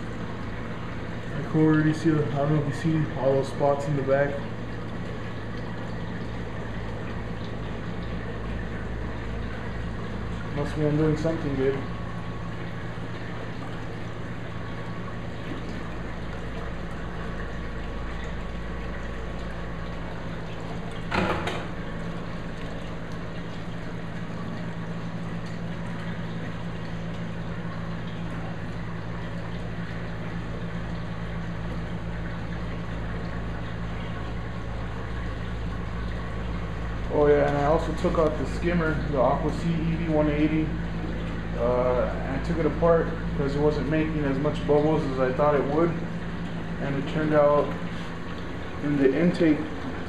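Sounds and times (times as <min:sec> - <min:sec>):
aquarium pump hum: 0:00.0 - 0:50.0
circulating water wash: 0:00.0 - 0:50.0.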